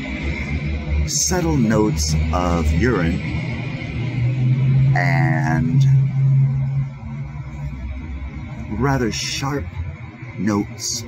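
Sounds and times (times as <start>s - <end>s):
steady low music note: 0.0s - 9.2s
low rumble: 0.0s - 10.8s.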